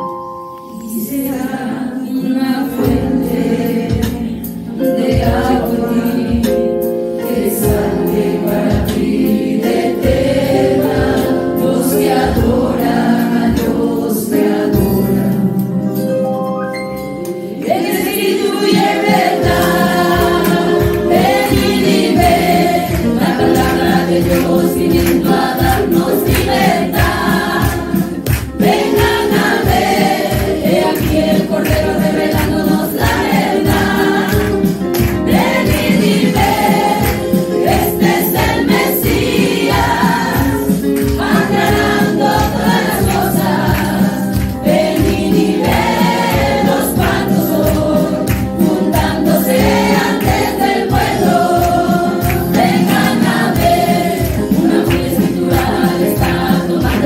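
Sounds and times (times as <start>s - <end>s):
women singing gospel: 0.7s - 15.5s, 17.5s - 57.0s
steady beat: 17.7s - 57.0s.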